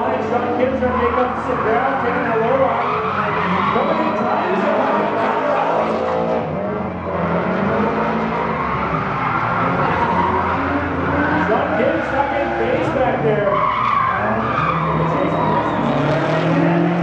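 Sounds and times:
car engines revving: 0.0s - 17.0s
tyres squealing: 0.0s - 17.0s.

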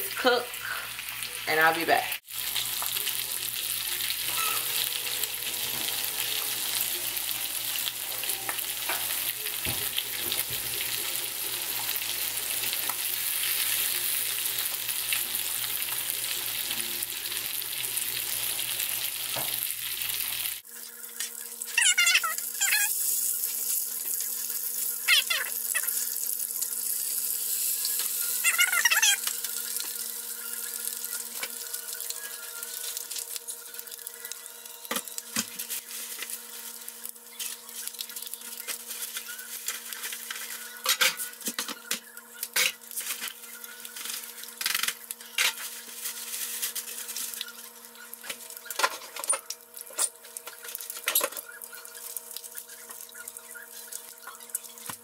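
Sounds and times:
bacon sizzling in a skillet: 0.0s - 55.0s
brief high squeaks: 4.3s - 4.7s.

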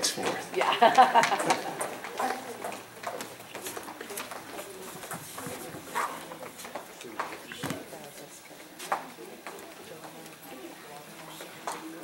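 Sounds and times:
children's footsteps and shuffles: 0.0s - 12.0s.

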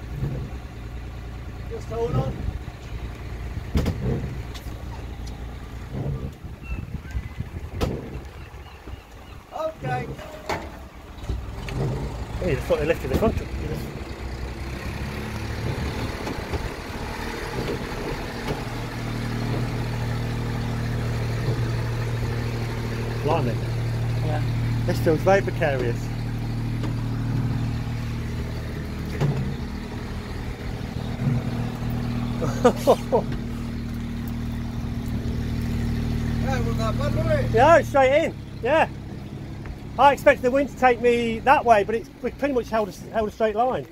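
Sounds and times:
engine low rumble: 0.0s - 43.9s.

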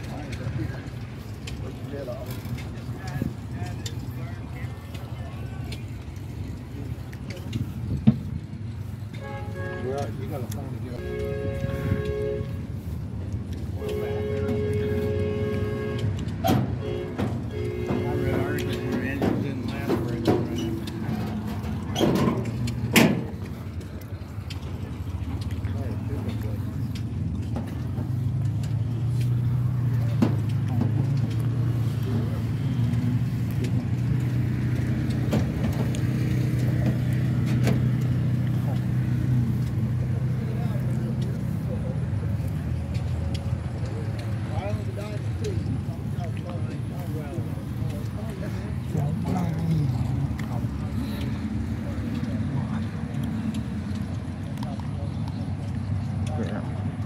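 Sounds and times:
background chatter: 0.0s - 57.0s
engine humming: 0.0s - 57.0s
horn blasts: 9.1s - 13.0s, 13.6s - 21.1s.

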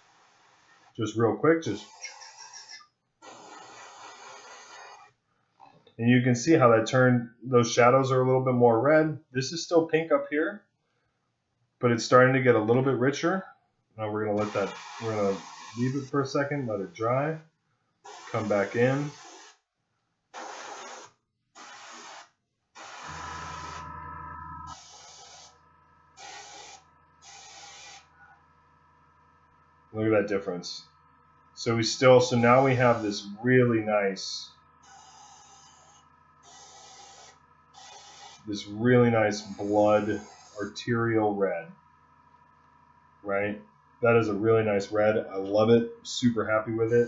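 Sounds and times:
airbrush spraying hiss: 0.0s - 0.9s, 1.8s - 5.1s, 14.4s - 16.2s, 18.1s - 19.6s, 20.4s - 23.8s, 24.7s - 25.6s, 26.2s - 28.1s, 34.8s - 38.6s, 39.4s - 40.8s
low hum: 23.1s - 26.2s.

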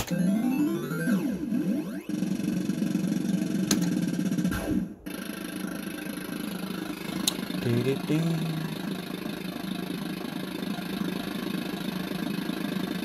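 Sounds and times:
electronic tones of spinning reels: 0.0s - 13.0s.

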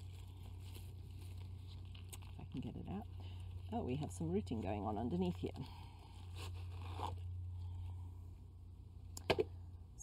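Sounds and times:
root ball rustling against plastic pot: 0.0s - 7.9s.

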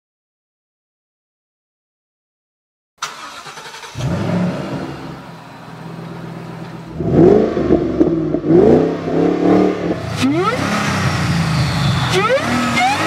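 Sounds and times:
car engine idling and revving: 3.0s - 13.0s.

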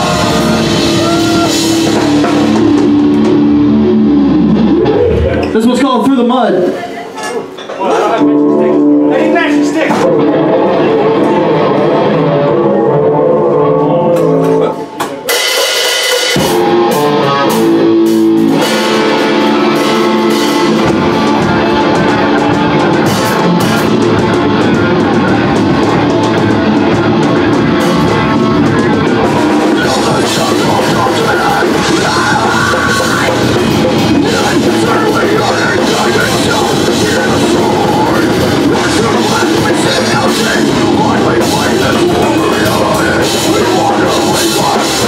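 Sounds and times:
heavy metal band playing: 0.0s - 6.8s, 7.8s - 45.0s.

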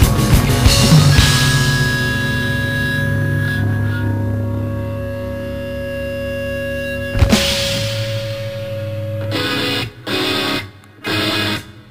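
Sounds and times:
rock band chord hits: 0.0s - 11.7s.

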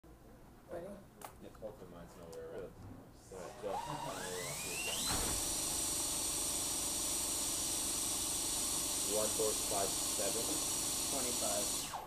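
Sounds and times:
cordless drill motor whine: 3.4s - 12.0s.

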